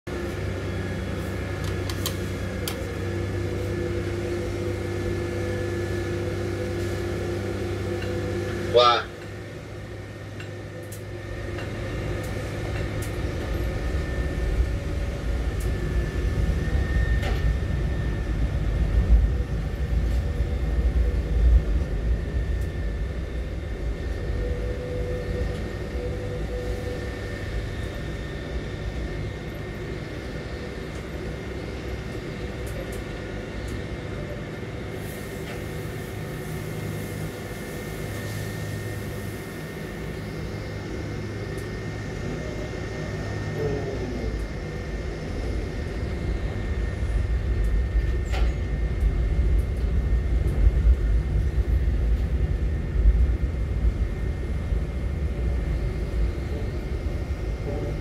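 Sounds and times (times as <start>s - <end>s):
deep machinery rumble: 0.0s - 58.0s
crane machinery hum: 0.1s - 58.0s.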